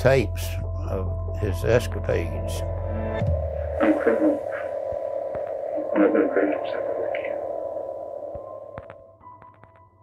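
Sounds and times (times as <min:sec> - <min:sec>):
man's voice on old tape: 0:00.0 - 0:02.7, 0:03.8 - 0:04.8, 0:05.6 - 0:07.6
steady electronic drone: 0:00.0 - 0:09.8.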